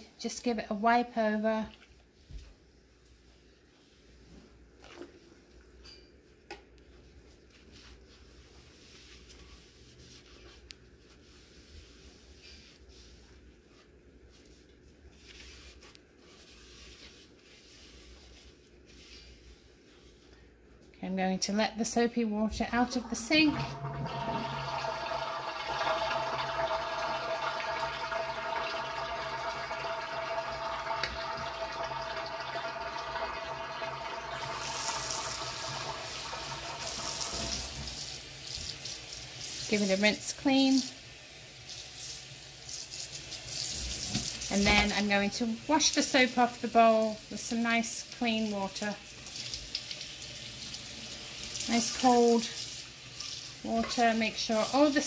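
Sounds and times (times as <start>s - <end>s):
wet paper towel wiping bowl: 6.9s - 20.9s, 22.6s - 27.9s, 34.3s - 40.8s, 42.8s - 49.7s, 50.9s - 52.6s, 53.2s - 55.0s
water draining down sink: 22.9s - 38.0s.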